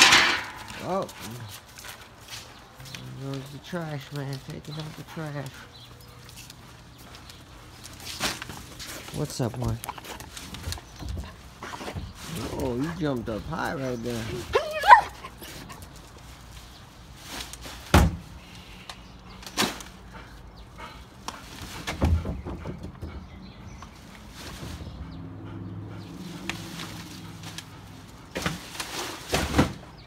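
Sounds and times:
dog whining: 0:14.4 - 0:15.8.

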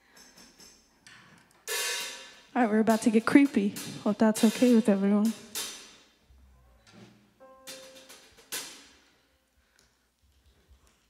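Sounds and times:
drum kit strikes: 0:01.7 - 0:06.0, 0:07.4 - 0:09.1.

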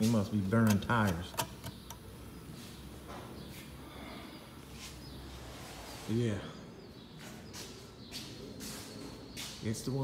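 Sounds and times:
shop background noise: 0:00.0 - 0:10.0.

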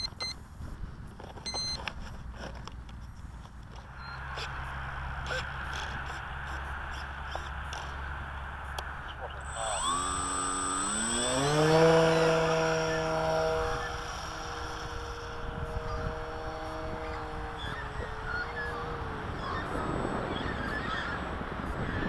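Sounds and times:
model plane motor whining: 0:09.4 - 0:21.2.

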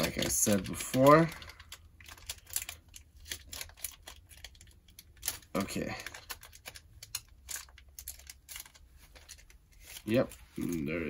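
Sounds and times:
foil wrapper crinkling: 0:00.0 - 0:11.0.

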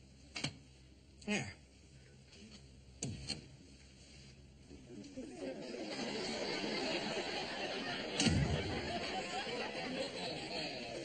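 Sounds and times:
studio audience murmur: 0:04.9 - 0:11.0.

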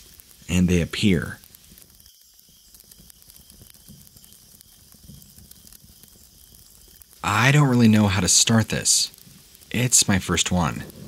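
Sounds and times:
faint steady hiss: 0:00.0 - 0:11.0
soft crackling: 0:00.0 - 0:11.0.

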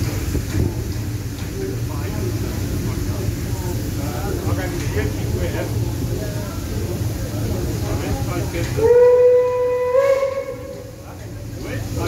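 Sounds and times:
steam locomotive whistle blast: 0:08.8 - 0:11.0.

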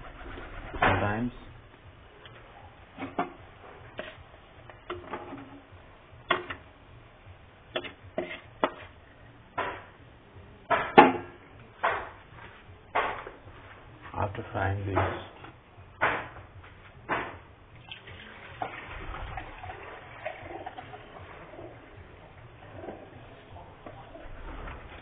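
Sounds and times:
spatula scraping a wok: 0:08.2 - 0:09.0.

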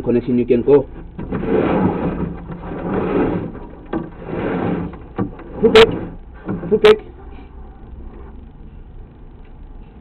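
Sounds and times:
steady low hum: 0:00.0 - 0:10.0
camera rod scraping in pipe: 0:01.2 - 0:06.8.

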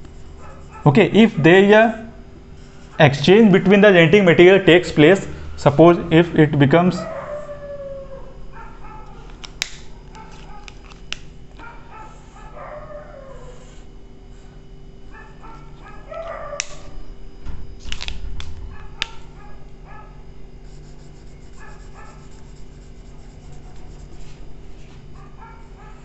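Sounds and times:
low electrical hum: 0:00.0 - 0:26.0
marker squeaking on whiteboard: 0:20.6 - 0:24.4.

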